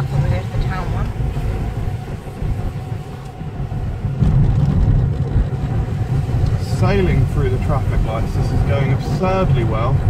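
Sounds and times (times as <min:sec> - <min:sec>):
car engine: 0:00.0 - 0:10.0
road rumble: 0:00.0 - 0:10.0.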